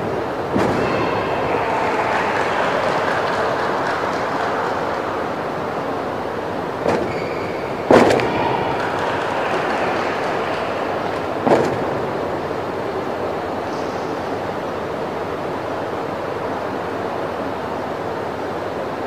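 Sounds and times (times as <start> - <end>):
indoor arena background noise: 0.0 - 19.0.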